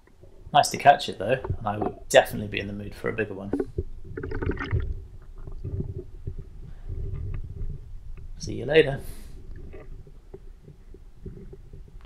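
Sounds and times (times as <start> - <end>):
muffled water sloshing: 1.3 - 8.4.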